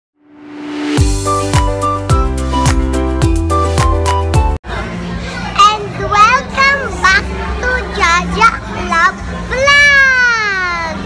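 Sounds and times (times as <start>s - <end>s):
girl talking excitedly: 5.6s - 11.0s.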